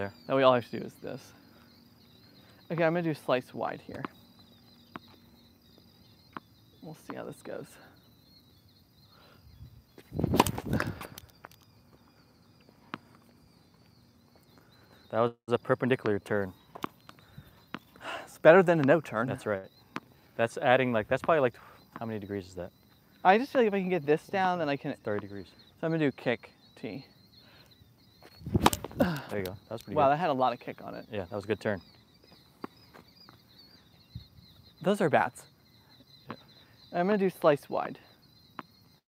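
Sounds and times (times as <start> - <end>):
faint high chirping: 0.0 - 39.0
knocks and scuffs: 9.9 - 11.6, 28.2 - 29.4
racket striking tennis ball: 10.3 - 10.7, 28.5 - 29.0
tennis racket hitting ball: 28.6 - 29.0.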